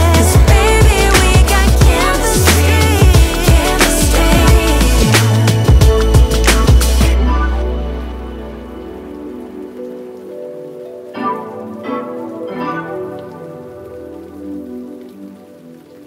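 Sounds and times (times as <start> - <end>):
background music beat and bass: 0.0 - 10.5
soft sustained chords: 0.0 - 16.0.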